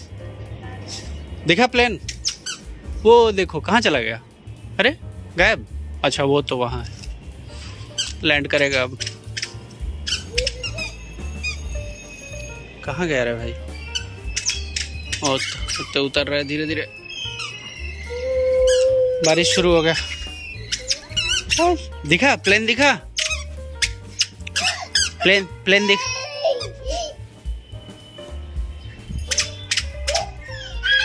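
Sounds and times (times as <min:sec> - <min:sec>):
background music with bass: 0:00.0 - 0:31.0
high chirping squawks: 0:02.1 - 0:02.7, 0:07.5 - 0:31.0
squeaker shoes squeaking: 0:02.1 - 0:02.7, 0:08.8 - 0:21.9, 0:23.1 - 0:31.0.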